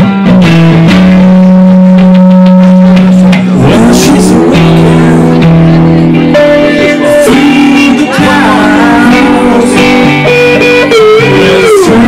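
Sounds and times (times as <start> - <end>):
blues-rock guitar music: 0.0 - 12.0.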